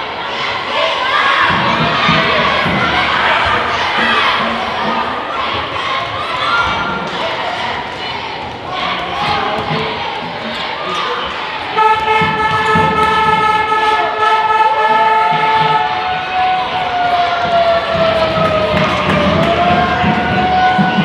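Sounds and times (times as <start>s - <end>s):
crowd noise: 0.0s - 21.0s
handheld horns sounding: 11.7s - 17.0s.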